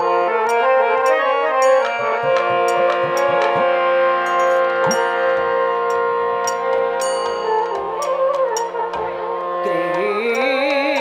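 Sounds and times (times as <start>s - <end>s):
harmonium chord: 0.0s - 10.4s
bamboo flute: 0.0s - 11.0s.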